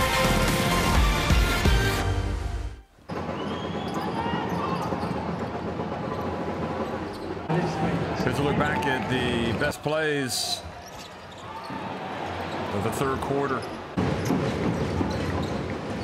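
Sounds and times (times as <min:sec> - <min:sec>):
sneakers squeaking on hardwood: 0:03.1 - 0:07.5, 0:10.6 - 0:16.0
arena crowd noise: 0:03.1 - 0:15.0
basketball bouncing: 0:13.6 - 0:16.0.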